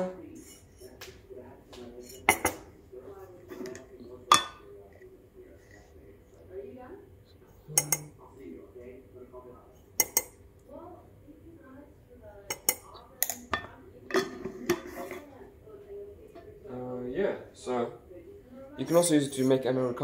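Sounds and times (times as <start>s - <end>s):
metal spoon clinking against mug: 7.7s - 8.2s, 10.0s - 10.4s.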